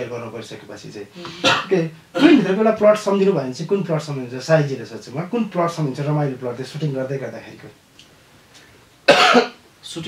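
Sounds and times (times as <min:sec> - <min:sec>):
man coughing: 0:01.2 - 0:02.5, 0:09.1 - 0:09.6.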